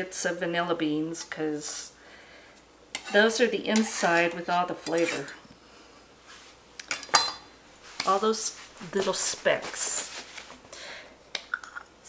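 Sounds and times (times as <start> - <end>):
kitchen items clicking and tapping: 11.4 - 11.9.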